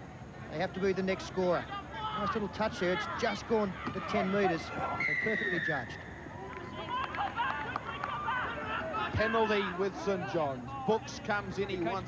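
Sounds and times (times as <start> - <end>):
faint overlapping shouts: 0.1 - 12.0.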